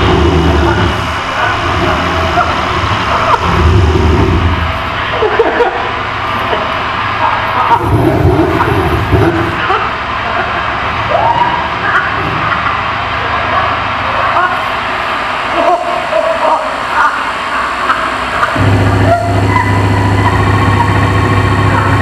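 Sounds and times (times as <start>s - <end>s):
low drone: 0.0s - 22.0s
noisy layered electronic texture: 0.0s - 22.0s.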